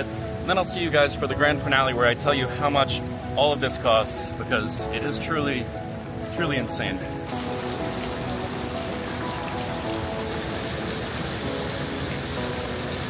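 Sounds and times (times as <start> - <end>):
heavy rain on pool water: 0.0 - 13.0.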